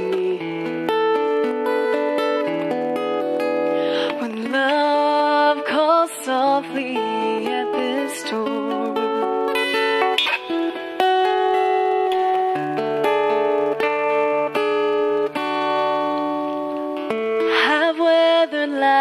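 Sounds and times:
woman singing: 0.0 - 2.0, 3.7 - 10.2, 17.4 - 19.0
acoustic guitar chords: 0.0 - 19.0.

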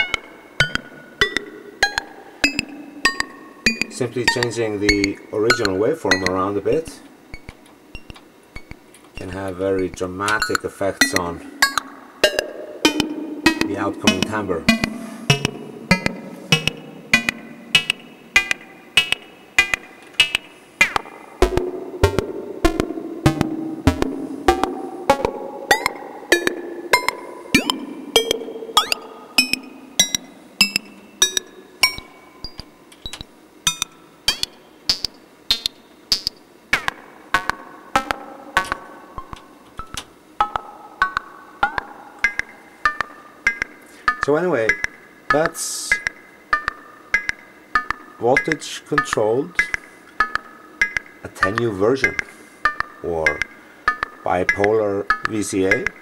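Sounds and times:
modular synthesizer percussive notes: 0.0 - 56.0.

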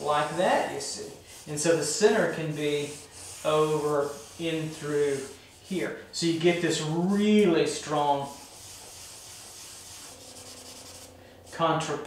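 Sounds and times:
drawing stick scratching paper: 0.0 - 12.0.

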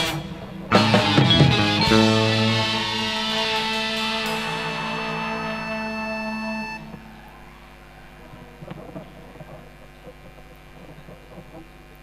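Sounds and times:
band holding a chord: 0.0 - 7.4.

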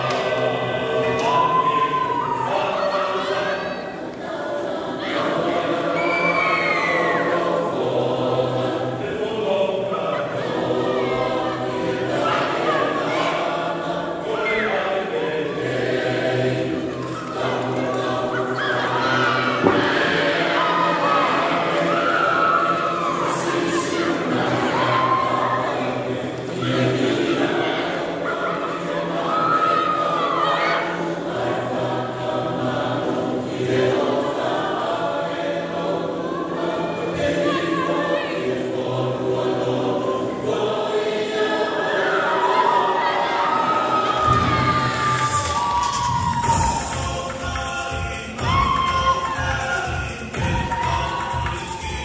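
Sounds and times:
choir singing in harmony: 0.0 - 52.0.

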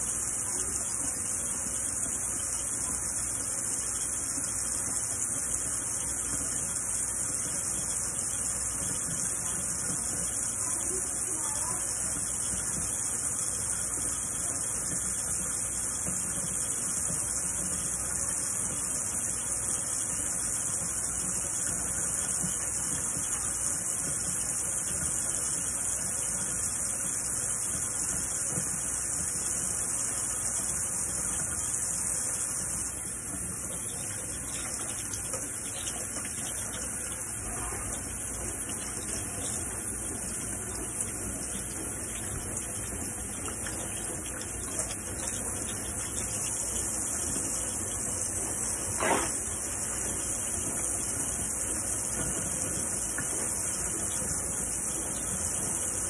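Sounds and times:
tap water running into sink: 0.0 - 56.0.

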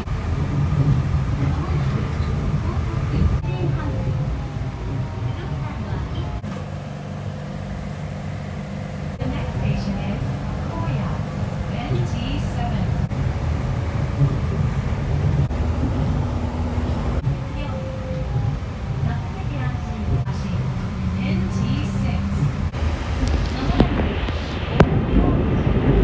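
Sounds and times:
train running hum: 0.0 - 26.0.

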